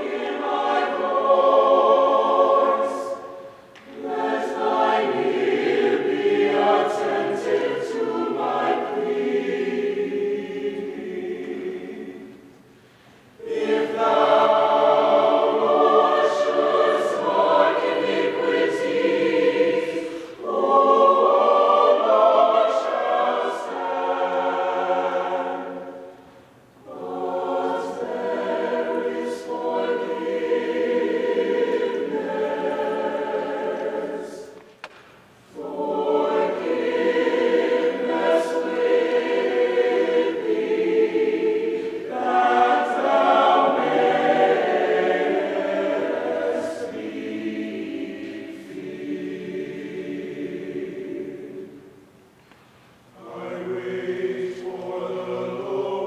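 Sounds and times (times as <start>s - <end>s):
mixed choir singing: 0.0s - 12.7s, 13.4s - 52.2s, 53.1s - 56.0s.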